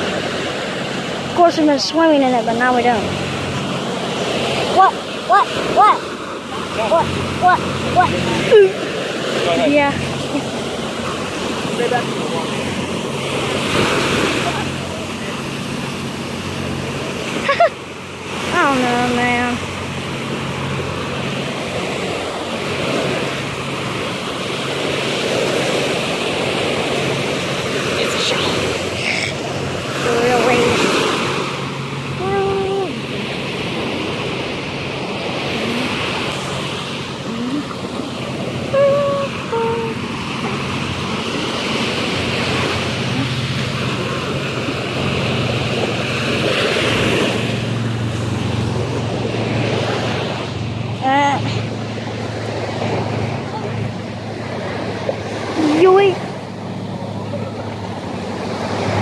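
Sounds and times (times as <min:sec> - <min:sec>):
small waves breaking on beach: 0:00.0 - 0:59.0.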